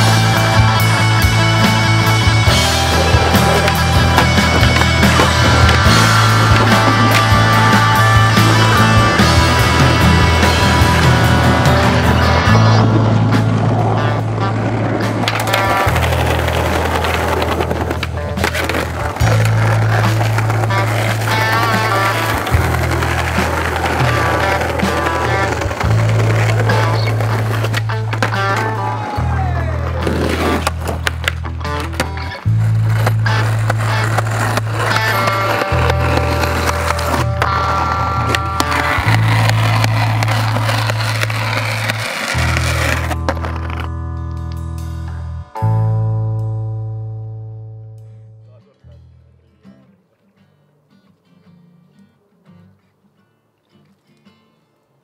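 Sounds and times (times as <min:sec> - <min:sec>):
skateboard clacks: 0:00.0 - 0:43.9
skateboard wheels rolling on paving: 0:00.0 - 0:44.0.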